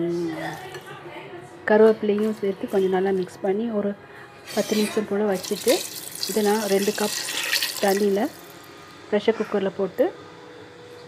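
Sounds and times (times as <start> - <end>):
woman speaking: 0.0 - 7.1, 9.1 - 10.2.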